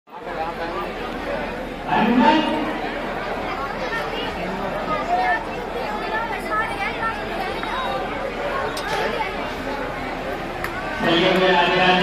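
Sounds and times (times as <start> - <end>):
indistinct chatter: 0.1 - 12.0.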